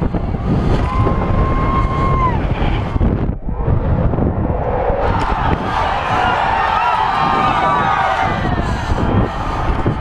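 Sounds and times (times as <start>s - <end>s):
wind buffeting microphone: 0.0s - 10.0s
spectators cheering and shouting: 0.8s - 10.0s.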